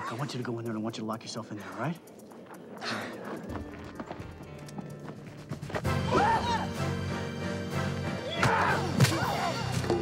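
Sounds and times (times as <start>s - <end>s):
tense film score music: 0.1s - 10.0s.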